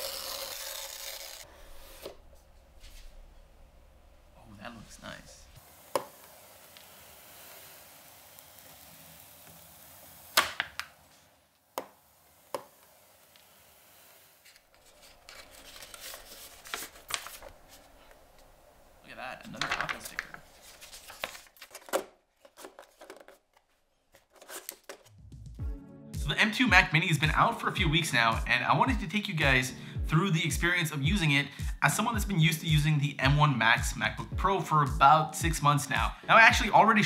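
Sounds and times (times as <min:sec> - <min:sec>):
paper and card packaging rustling: 0:14.4 - 0:18.7, 0:19.4 - 0:25.1.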